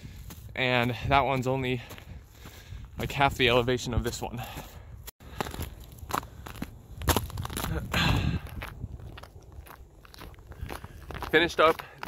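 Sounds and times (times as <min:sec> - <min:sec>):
boots crunching on frozen leaves: 0:05.2 - 0:12.0.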